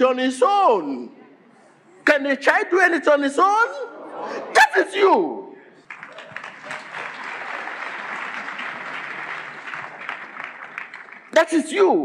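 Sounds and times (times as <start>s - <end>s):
congregation applauding: 5.8s - 11.7s.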